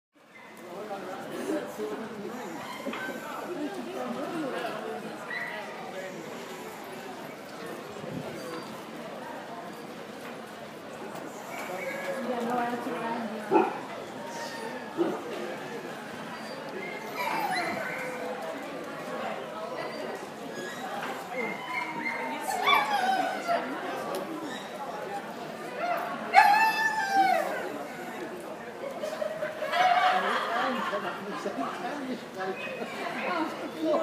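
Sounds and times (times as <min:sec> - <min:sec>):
background chatter: 0:00.2 - 0:34.0
murmur of ringside noise: 0:00.2 - 0:34.0
people talking in background: 0:00.2 - 0:34.0
dog whining: 0:16.4 - 0:18.2.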